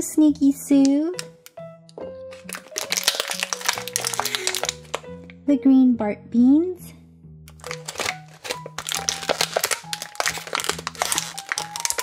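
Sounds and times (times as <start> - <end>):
background music with held notes: 0.0 - 12.0
plastic packaging crinkling: 2.3 - 5.1, 7.5 - 12.0.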